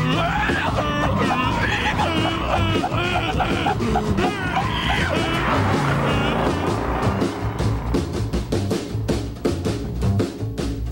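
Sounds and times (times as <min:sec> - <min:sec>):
car engine sound effect: 0:03.9 - 0:09.4.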